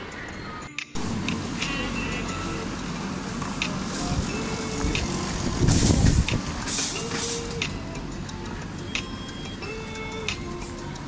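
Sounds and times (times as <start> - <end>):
background music: 0.0 - 11.0
indoor mall hubbub: 0.0 - 11.0
scattered clicks: 0.1 - 11.0
hissing rush: 1.0 - 8.1.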